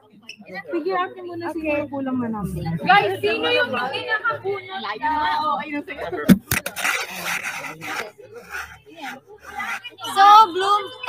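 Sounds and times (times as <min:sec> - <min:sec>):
faint voices: 0:06.2 - 0:11.0
sharp knocks on phone microphone: 0:06.3 - 0:06.7
rubbing and scraping on microphone: 0:06.3 - 0:10.3.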